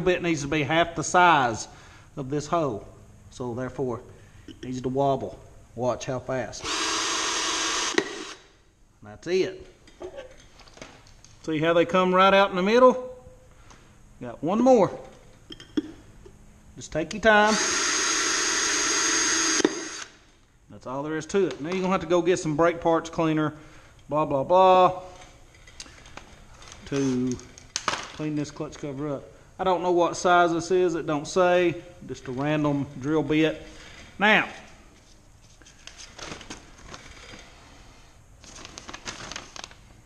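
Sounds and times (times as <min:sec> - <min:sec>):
cordless drill cutting metal: 0:06.6 - 0:08.5, 0:17.5 - 0:20.1.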